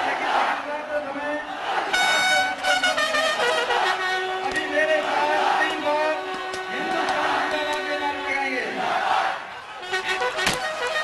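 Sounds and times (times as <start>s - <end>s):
crowd noise: 0.0s - 11.0s
bugle held notes: 1.9s - 8.7s, 9.6s - 11.0s.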